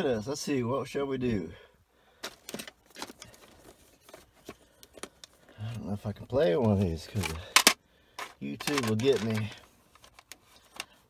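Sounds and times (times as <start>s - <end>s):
cassette cases clicking: 6.6s - 10.9s.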